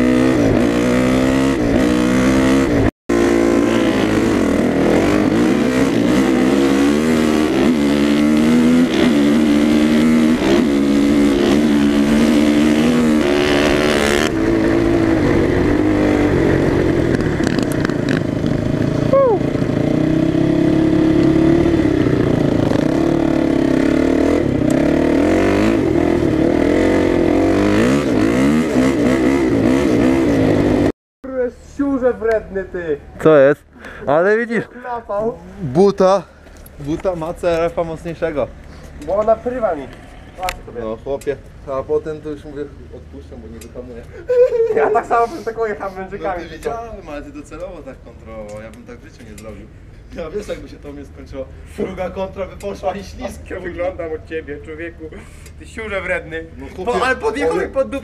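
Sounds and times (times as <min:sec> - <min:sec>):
dirt bike passing by: 0:00.0 - 0:30.9
dirt bike engine revving: 0:00.0 - 0:31.0.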